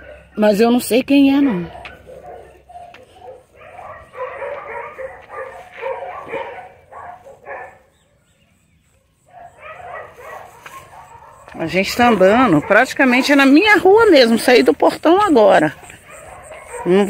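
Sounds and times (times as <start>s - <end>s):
dogs barking: 0.0s - 8.2s, 9.0s - 17.0s.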